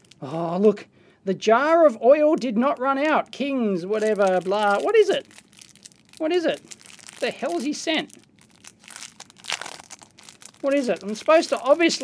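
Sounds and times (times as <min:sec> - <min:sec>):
plastic sleeve crinkling: 0:00.0 - 0:00.3, 0:02.6 - 0:12.0.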